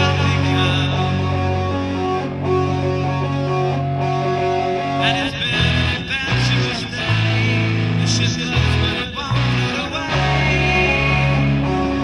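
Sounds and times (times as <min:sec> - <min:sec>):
lo-fi instrumental rock music: 0:00.0 - 0:12.0.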